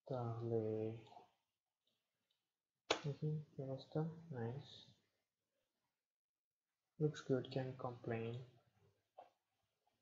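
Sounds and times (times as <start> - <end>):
man speaking: 0.0 - 1.3, 2.9 - 5.0, 7.0 - 8.6.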